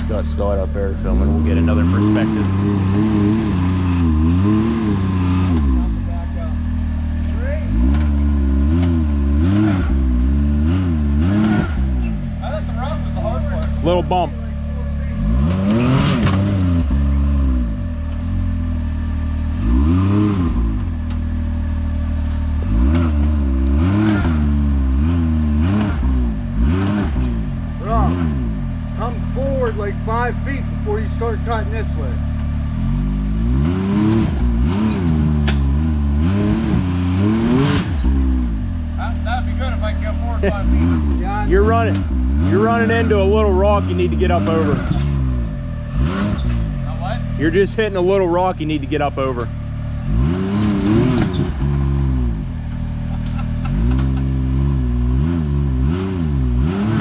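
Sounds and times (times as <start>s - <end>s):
engine revving: 0.0s - 57.0s.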